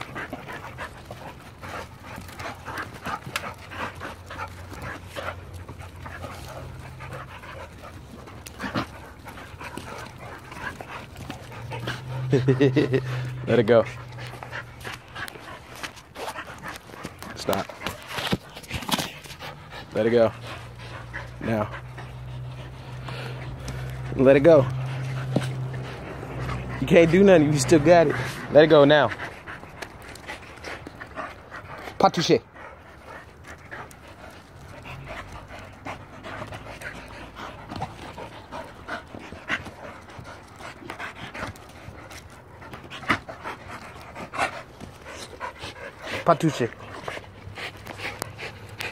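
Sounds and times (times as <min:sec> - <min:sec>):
dogs breathing: 0:00.0 - 0:48.9.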